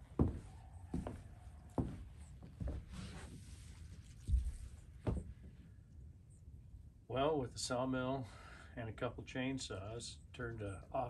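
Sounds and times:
footsteps on wooden boards: 0.0 - 3.4, 4.3 - 5.3.

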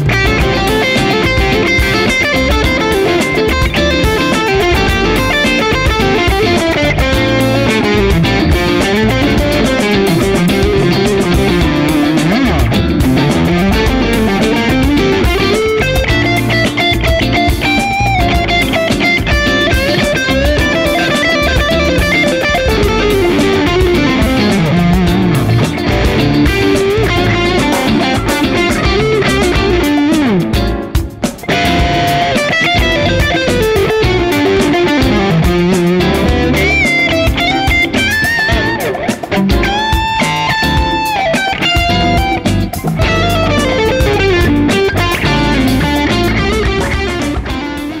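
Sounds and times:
electric guitar lead with bends: 0.0 - 48.0.

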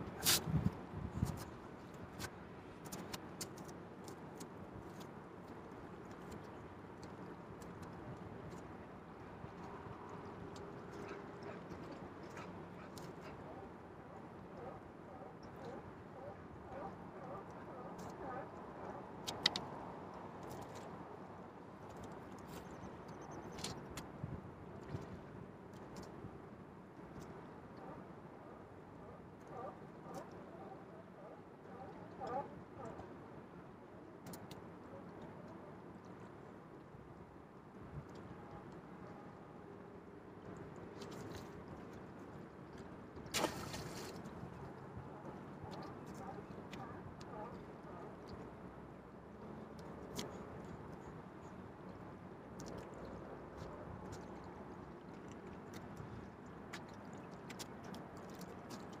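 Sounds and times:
low steady water wash: 0.0 - 59.0
light clicks and taps: 19.2 - 19.8, 55.0 - 59.0.

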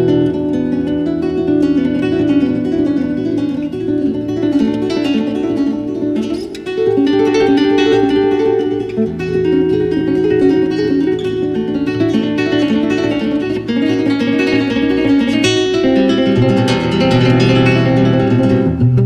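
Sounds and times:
classical guitar fingerpicking: 0.0 - 19.0.

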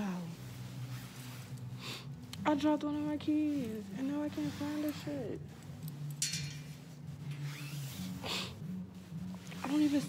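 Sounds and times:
fabric rubbing on microphone: 0.0 - 1.8, 2.5 - 5.7, 6.7 - 10.0
steady low hum: 0.0 - 10.0.

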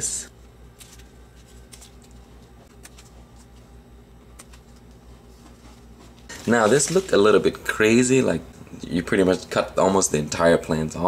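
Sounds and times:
low steady hum: 0.0 - 11.0
scissors snipping leaves: 1.7 - 3.5.

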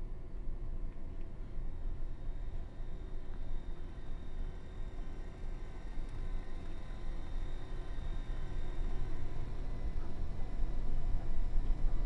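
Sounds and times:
faint hums: 0.0 - 12.0.

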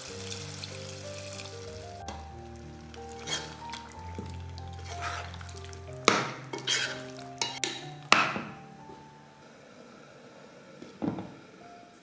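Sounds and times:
metal ladle stirring gravy in pot: 3.0 - 7.9.

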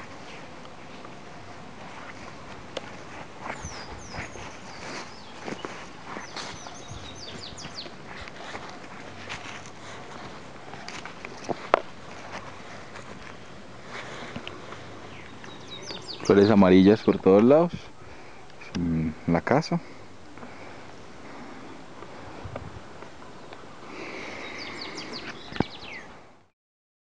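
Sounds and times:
footsteps through grass: 0.0 - 17.7
birds chirping: 0.0 - 26.3.

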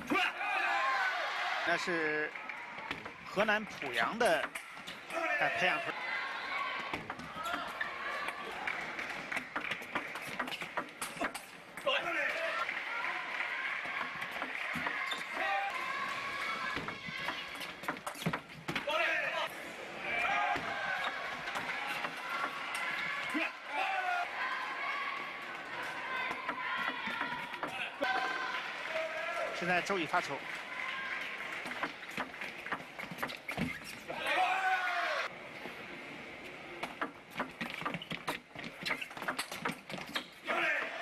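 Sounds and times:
man shouting: 40.5 - 41.0.

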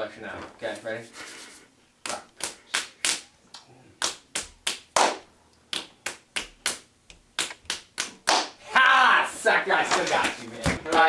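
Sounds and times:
fists slapping into palms: 2.0 - 3.3, 4.0 - 8.6.

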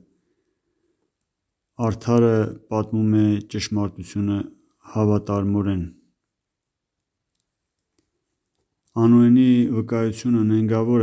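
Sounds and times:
man reading aloud: 1.7 - 6.1, 8.9 - 11.0
faint tiny clicks: 7.0 - 9.0.

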